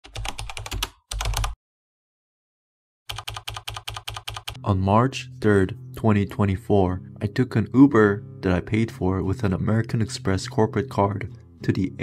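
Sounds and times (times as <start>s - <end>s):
computer keyboard typing: 0.0s - 1.6s, 3.1s - 4.6s.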